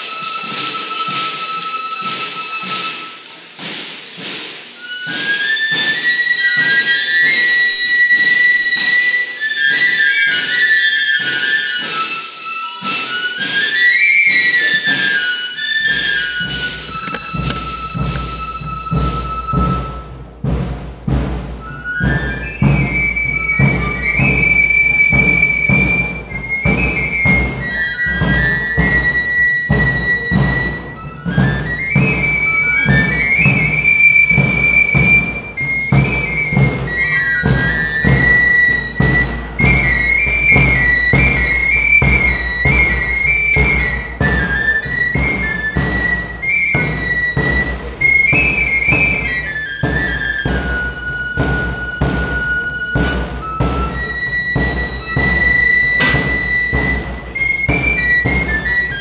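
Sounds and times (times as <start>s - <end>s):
drums struck with sticks: 0.0s - 8.7s, 12.8s - 59.0s
pipes playing high melody: 0.0s - 59.0s.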